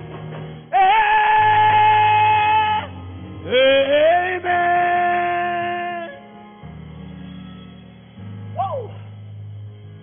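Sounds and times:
man singing a high held note: 0.7 - 6.2
low sustained keyboard note: 4.4 - 10.0.

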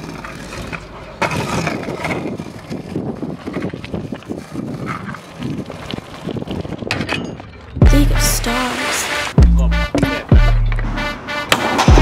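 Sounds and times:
scooter wheels rolling on asphalt: 0.0 - 7.9.

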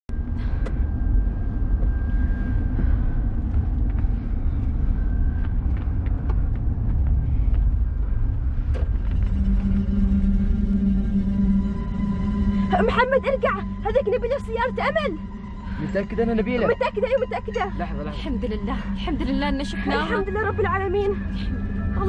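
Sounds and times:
car engine and road noise: 0.1 - 22.0.

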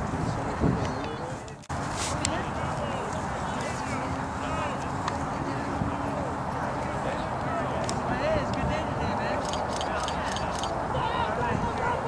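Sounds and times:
wind rumble on microphone: 0.0 - 7.2, 10.7 - 12.0.

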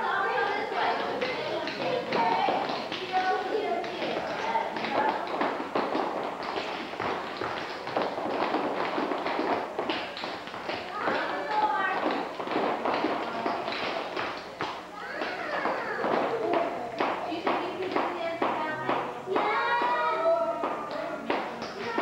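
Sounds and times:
indistinct voices: 0.0 - 22.0
dance shoes tapping on wooden floor: 1.2 - 22.0.

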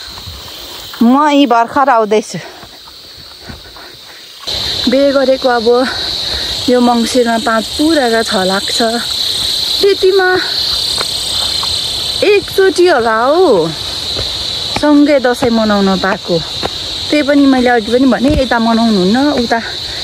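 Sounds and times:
insects chirring: 0.0 - 20.0
woman talking: 1.0 - 2.6, 4.8 - 10.7, 12.2 - 13.8, 14.7 - 19.9.

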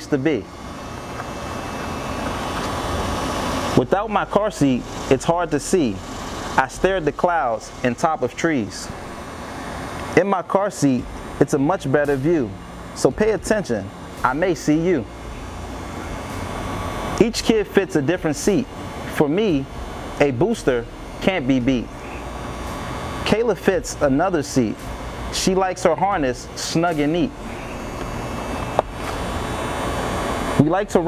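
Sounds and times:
background hum and hiss: 0.0 - 31.0.

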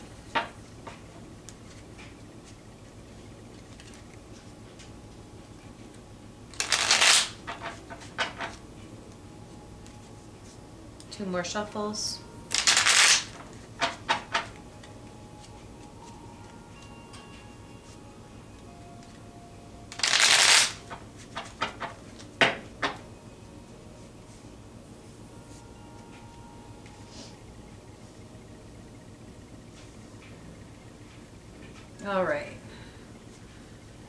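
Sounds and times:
cards riffling: 6.5 - 7.8, 12.5 - 13.4, 19.9 - 22.3.

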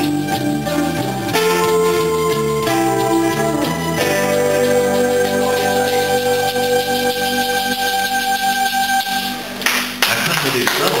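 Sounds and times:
band holding final chord: 0.0 - 9.6
audience applause: 9.6 - 11.0.

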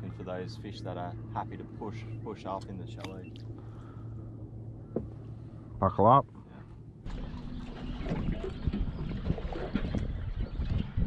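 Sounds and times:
waves lapping against boat hull: 4.8 - 5.4, 6.3 - 11.0
wind rumbling on microphone: 7.0 - 11.0.

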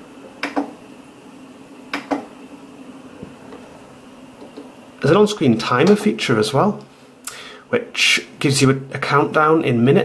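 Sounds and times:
faint steady hum: 0.0 - 10.0
monitor joystick clicks: 0.4 - 0.7, 1.9 - 2.3.

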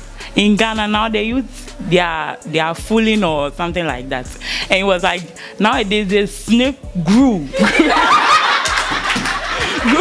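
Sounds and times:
girl laughing close: 7.6 - 10.0
roomful of classmates laughing: 7.6 - 10.0.

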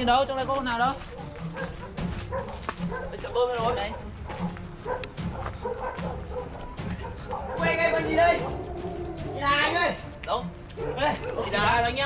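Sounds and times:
animal yelps: 3.9 - 9.5.

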